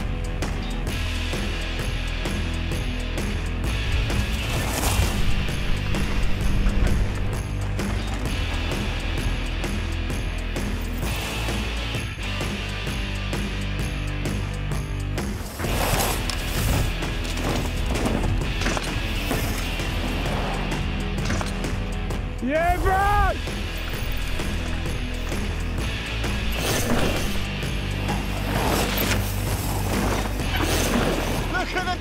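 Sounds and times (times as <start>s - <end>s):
background music: 0.0s - 32.0s
bike tyres skidding on dirt: 15.4s - 18.5s, 26.6s - 31.6s
rider shouting: 22.4s - 23.4s.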